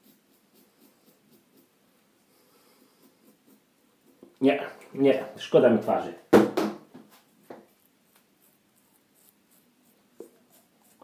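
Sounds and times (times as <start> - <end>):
fingertips rubbing stubbly cheek: 0.0 - 4.9, 7.1 - 11.0.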